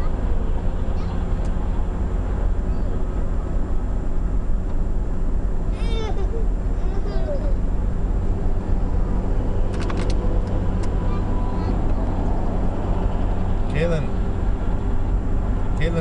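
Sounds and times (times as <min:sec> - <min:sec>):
car road and engine rumble: 0:00.0 - 0:16.0.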